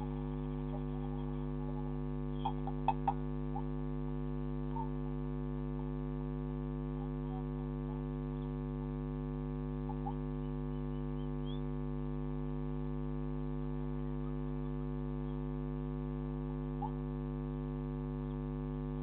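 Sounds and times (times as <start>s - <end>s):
electrical mains hum: 0.0s - 19.0s.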